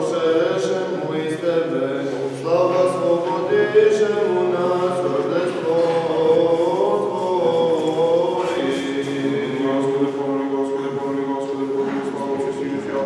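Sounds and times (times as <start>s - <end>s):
men singing liturgical chant: 0.0s - 13.0s.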